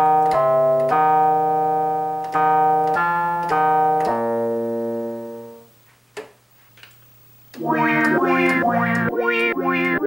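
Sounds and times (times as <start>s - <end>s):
synthesizer bell-like chords: 7.6s - 10.0s.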